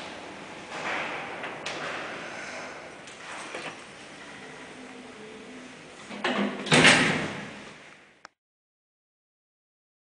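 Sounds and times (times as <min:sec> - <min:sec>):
elevator mechanical noise: 0:00.0 - 0:08.0.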